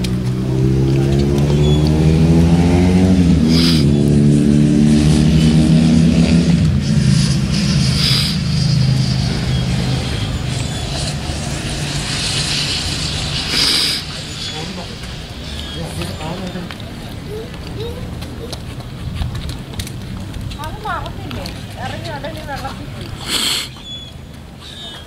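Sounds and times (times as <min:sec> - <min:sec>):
engine revving: 0:00.0 - 0:16.7.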